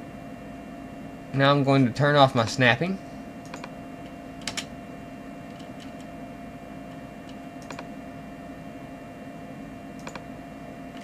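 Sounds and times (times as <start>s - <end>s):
steady electrical hum: 0.0s - 11.0s
computer clicks: 3.4s - 3.8s, 7.2s - 7.9s, 10.0s - 10.3s.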